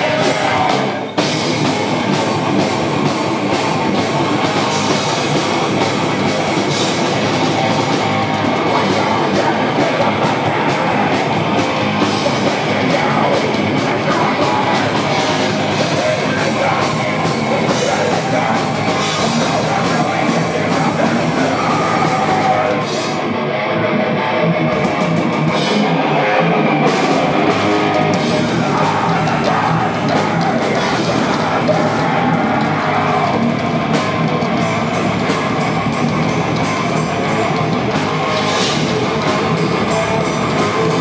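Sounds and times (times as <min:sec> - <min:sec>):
drum kit: 0:00.0 - 0:23.4, 0:24.6 - 0:41.0
bass guitar: 0:00.0 - 0:41.0
distorted electric guitars: 0:00.0 - 0:41.0
heavy metal band playing: 0:00.0 - 0:41.0.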